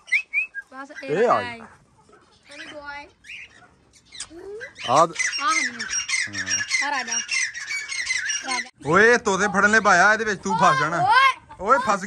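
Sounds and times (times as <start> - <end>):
cockatiels squawking and chattering: 0.0 - 10.0.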